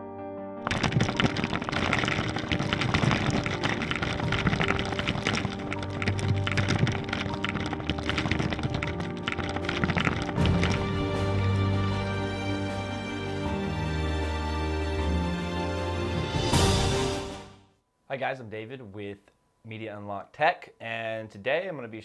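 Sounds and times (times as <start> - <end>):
crackling clattering impact effects: 0.6 - 12.8.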